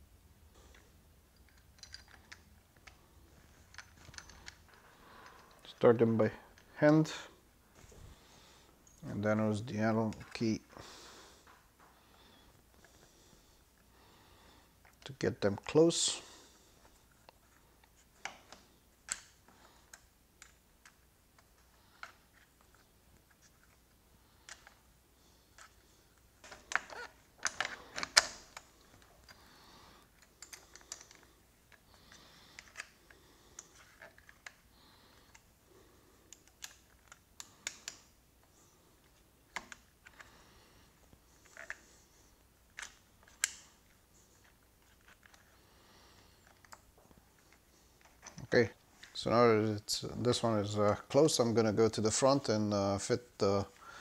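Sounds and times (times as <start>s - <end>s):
hex key clicking on metal screws: 1.4s - 2.5s.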